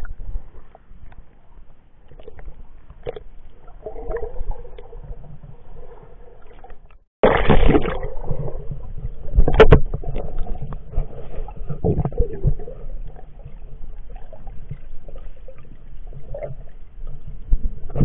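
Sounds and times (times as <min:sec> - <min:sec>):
muffled water sloshing and bubbling: 0:00.0 - 0:18.0
sharp water splashes: 0:06.5 - 0:08.7.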